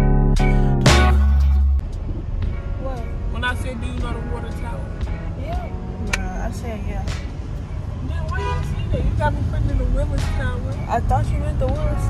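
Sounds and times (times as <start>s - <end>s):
car road rumble: 0.6s - 12.0s.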